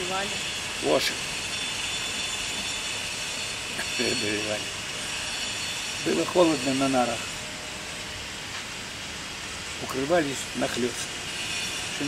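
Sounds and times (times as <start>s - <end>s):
faint high steady tones: 0.0s - 8.2s.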